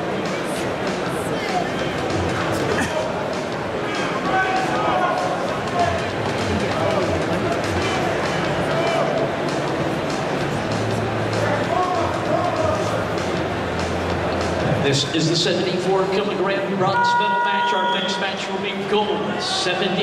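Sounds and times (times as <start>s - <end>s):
crowd chatter: 0.0s - 20.0s
music over public address system: 0.0s - 20.0s.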